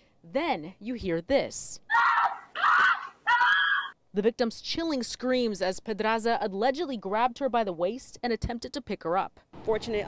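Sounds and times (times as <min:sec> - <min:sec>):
woman screaming: 0:01.9 - 0:04.0.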